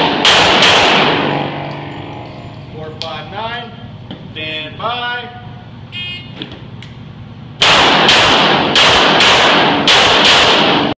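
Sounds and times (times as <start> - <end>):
pistol shots echoing: 0.0 - 1.7, 7.6 - 10.9.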